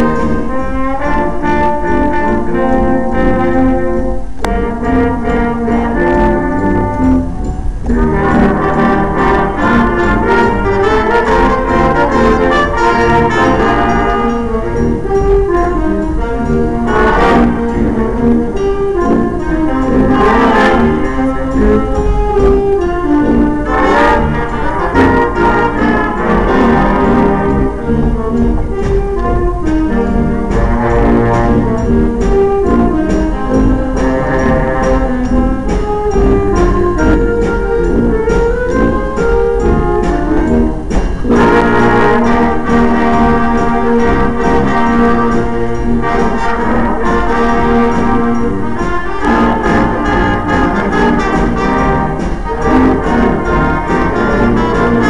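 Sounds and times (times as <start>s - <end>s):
jazz band playing: 0.0s - 55.0s.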